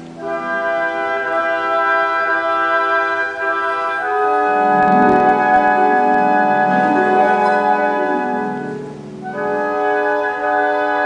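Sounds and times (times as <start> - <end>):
orchestra playing ballet music: 0.0 - 11.0.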